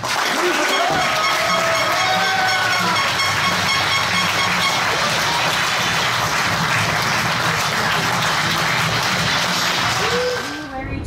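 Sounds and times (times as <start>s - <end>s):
crowd applauding: 0.0s - 10.7s.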